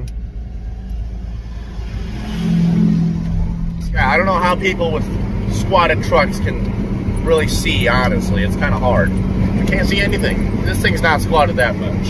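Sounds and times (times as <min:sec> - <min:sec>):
truck engine and road rumble: 0:00.0 - 0:12.0.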